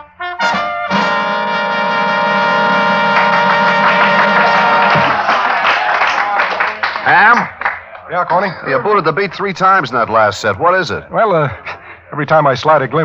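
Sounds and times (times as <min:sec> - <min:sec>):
jazz band with brass: 0:00.0 - 0:05.6.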